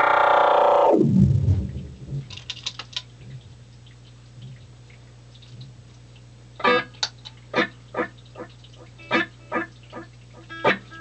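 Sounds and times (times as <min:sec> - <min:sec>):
guitar amplifier hum: 0:00.0 - 0:11.0.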